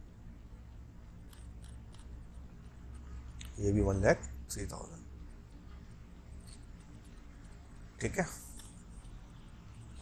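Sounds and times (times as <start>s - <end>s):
low steady hum: 0.0s - 10.0s
stylus scratching on tablet: 5.5s - 10.0s.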